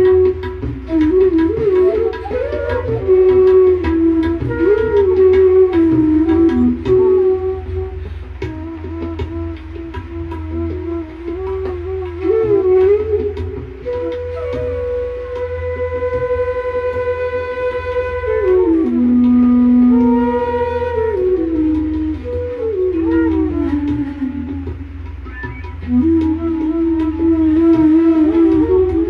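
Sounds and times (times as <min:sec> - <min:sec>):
bamboo flute slow melody: 0:00.0 - 0:29.0.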